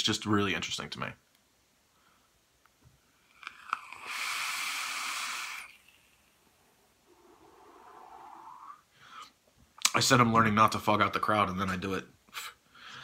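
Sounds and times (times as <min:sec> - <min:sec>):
person exhaling: 0:03.4 - 0:06.1, 0:07.0 - 0:09.4
airy hiss of inhaling vapour: 0:03.4 - 0:06.4, 0:07.0 - 0:09.3.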